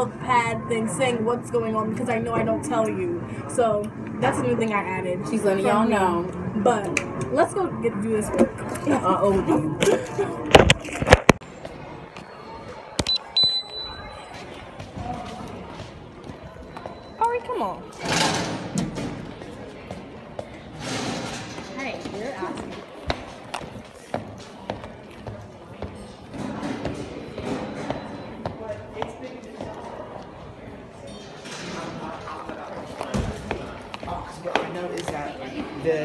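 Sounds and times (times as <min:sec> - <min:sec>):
indistinct talking: 0:00.0 - 0:36.0.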